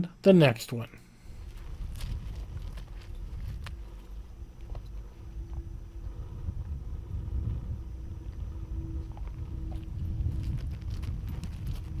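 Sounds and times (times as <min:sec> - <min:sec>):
faint steady hum: 0:00.0 - 0:12.0
wind buffeting microphone: 0:01.3 - 0:12.0.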